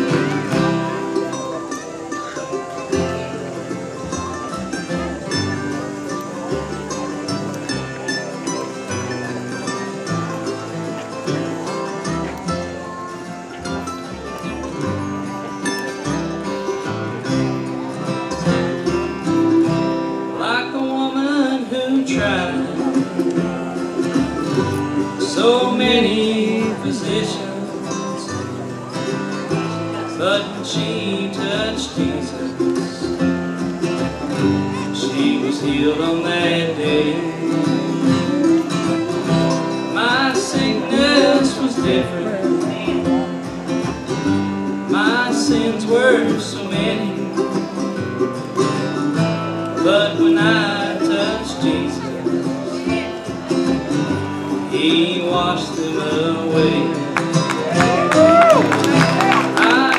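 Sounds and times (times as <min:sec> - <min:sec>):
acoustic guitars: 0:00.0 - 0:59.9
mandolin: 0:00.0 - 0:59.9
upright bass: 0:00.0 - 0:59.9.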